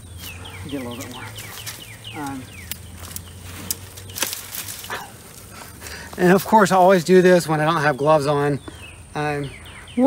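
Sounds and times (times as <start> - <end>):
branches crackling: 0.0 - 10.0
loppers snipping branches: 0.2 - 6.4.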